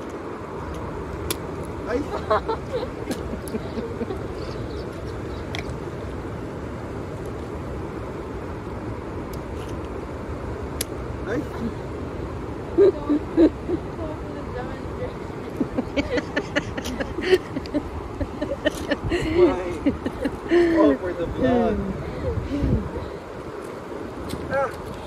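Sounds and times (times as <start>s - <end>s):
voices and laughter: 1.9s - 5.3s, 12.7s - 23.2s.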